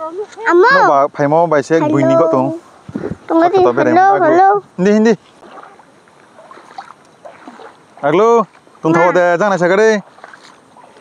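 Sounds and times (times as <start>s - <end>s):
shallow water sloshing and splashing: 5.2s - 11.0s.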